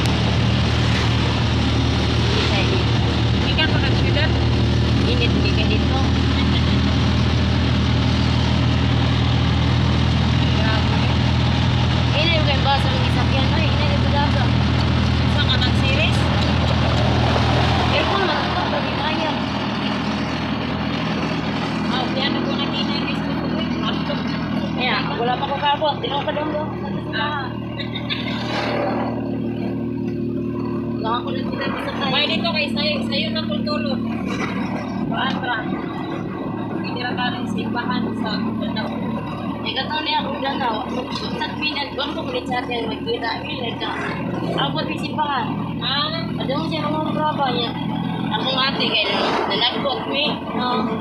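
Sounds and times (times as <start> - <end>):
road noise: 0.0 - 51.0
vehicle engine drone: 0.0 - 51.0.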